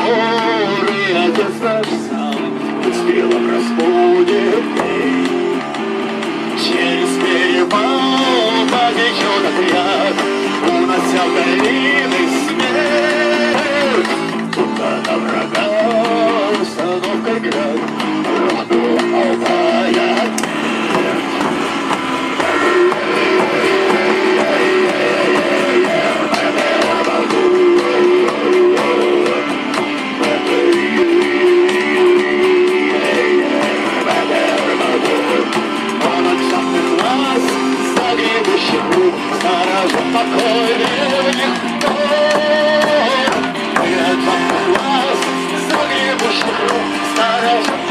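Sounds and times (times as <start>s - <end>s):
electric guitar: 0.0s - 47.9s
hand drum: 0.0s - 47.9s
frame drum: 4.3s - 47.9s.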